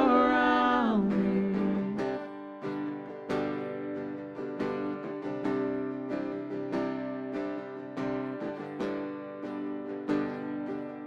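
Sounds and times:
person singing: 0:00.0 - 0:02.3
acoustic guitar strumming: 0:00.0 - 0:11.0.

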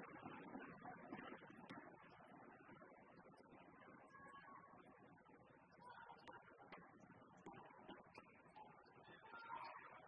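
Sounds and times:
faint crowd murmur: 0:00.0 - 0:10.0.

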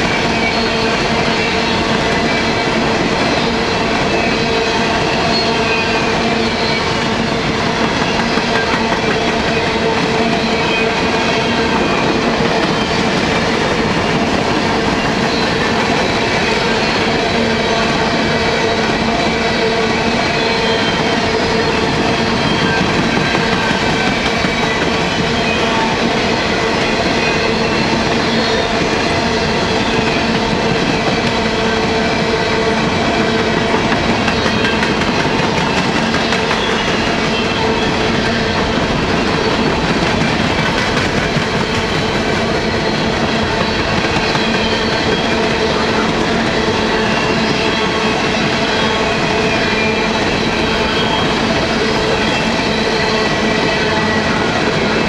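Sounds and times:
train wheels clattering over rail joints: 0:39.4 - 0:42.6.

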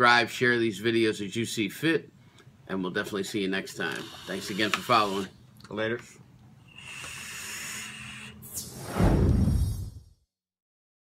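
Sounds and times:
vapor exhaling hiss: 0:06.7 - 0:08.9
brief swish: 0:08.4 - 0:10.2.

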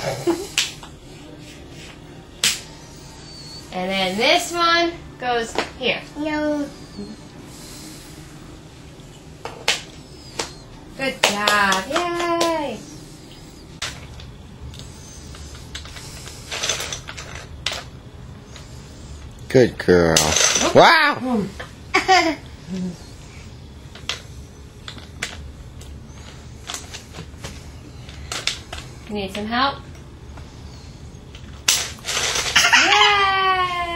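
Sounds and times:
toy pieces rattling scrapes: 0:14.8 - 0:17.9, 0:31.7 - 0:32.8.

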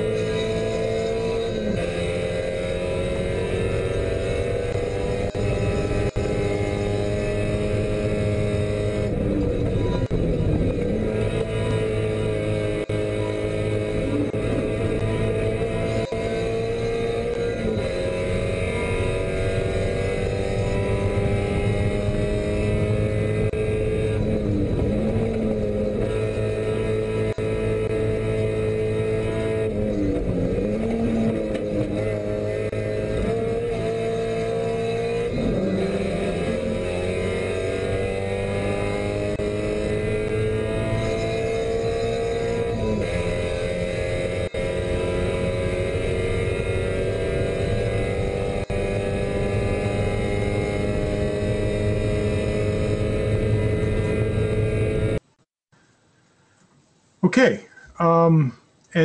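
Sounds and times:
race car engine at high revs: 0:00.0 - 0:55.3.

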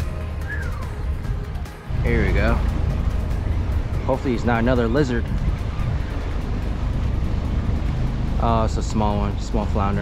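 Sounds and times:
jet ski engines droning: 0:00.0 - 0:10.0.

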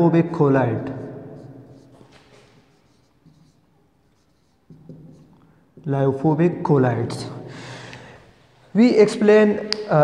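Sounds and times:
marker writing on whiteboard: 0:00.2 - 0:05.9.

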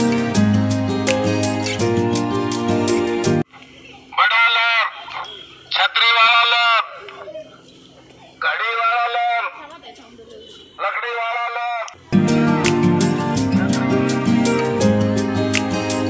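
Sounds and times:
vendor calling through megaphone: 0:04.0 - 0:07.3, 0:08.3 - 0:12.1.

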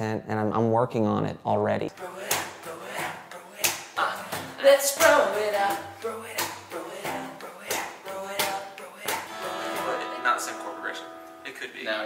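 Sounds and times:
acoustic guitar struck and ringing: 0:09.3 - 0:11.7.

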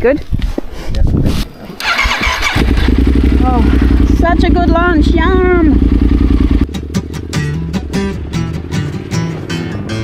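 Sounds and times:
bass line: 0:01.8 - 0:10.0
motorcycle engine running: 0:01.8 - 0:10.0
strummed acoustic guitar: 0:06.7 - 0:10.0.

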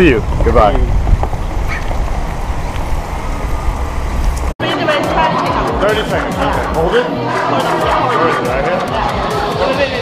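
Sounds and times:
wind buffeting microphone: 0:00.0 - 0:04.5
music: 0:04.6 - 0:10.0.

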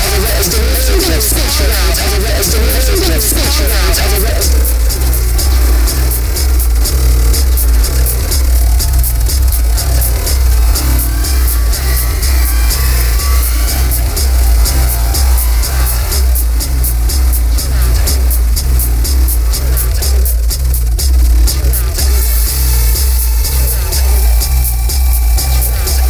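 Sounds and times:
deep bass pulse: 0:00.0 - 0:26.0
electronic textures: 0:00.0 - 0:26.0
high electronic ticks: 0:00.0 - 0:26.0.

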